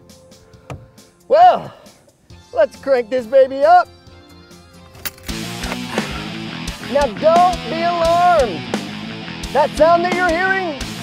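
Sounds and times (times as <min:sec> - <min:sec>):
soft background music: 0:00.0 - 0:11.0
loud rock music from car radio: 0:02.3 - 0:11.0.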